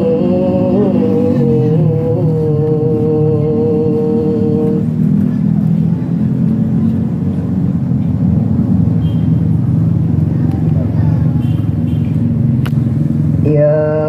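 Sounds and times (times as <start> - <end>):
boy reciting melodically: 0.0 - 4.9, 13.4 - 14.0
low steady hum: 0.0 - 8.7.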